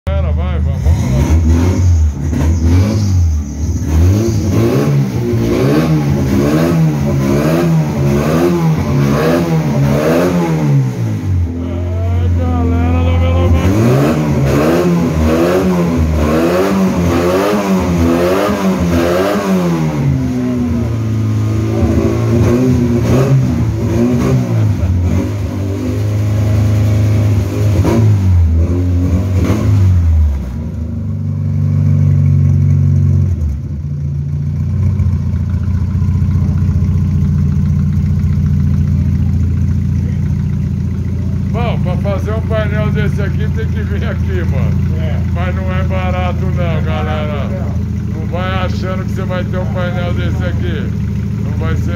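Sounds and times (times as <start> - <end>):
buggy engine revving: 0.1 - 51.9.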